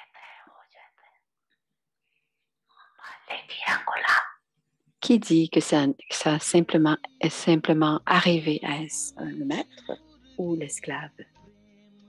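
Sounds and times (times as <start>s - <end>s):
person whispering: 0.0s - 1.1s, 2.8s - 4.4s, 8.2s - 10.6s.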